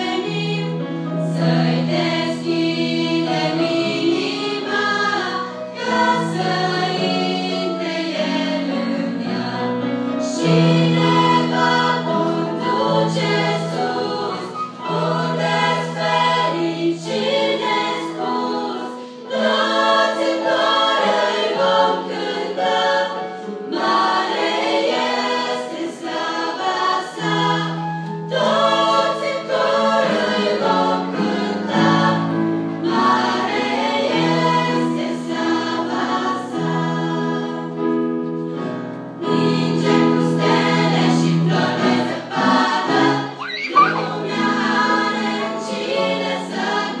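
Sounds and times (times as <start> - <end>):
choir singing a church song: 0.0 - 47.0.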